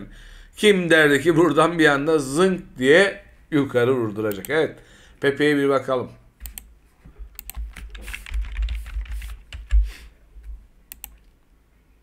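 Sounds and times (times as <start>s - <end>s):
computer keyboard typing: 7.3s - 9.9s, 10.9s - 11.3s.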